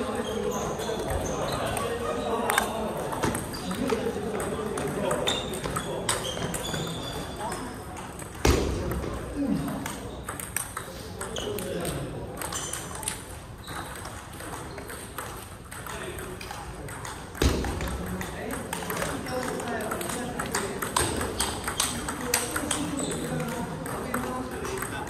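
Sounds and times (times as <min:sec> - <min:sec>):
table tennis balls clicking: 0:00.0 - 0:25.0.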